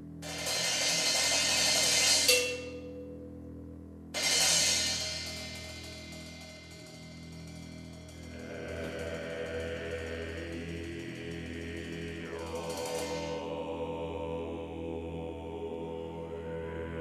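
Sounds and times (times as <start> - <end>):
low held drone: 0.0 - 17.0
cymbal crash ringing: 0.2 - 3.2, 4.2 - 13.7
cymbal roll: 0.2 - 3.2, 4.2 - 14.0.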